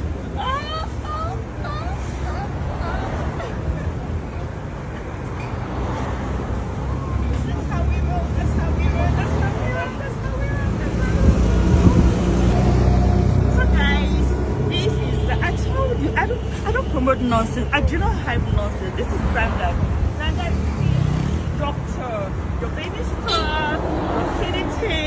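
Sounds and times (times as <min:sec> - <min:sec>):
people chattering: 0:00.0 - 0:25.0
traffic engine rumble: 0:00.0 - 0:25.0.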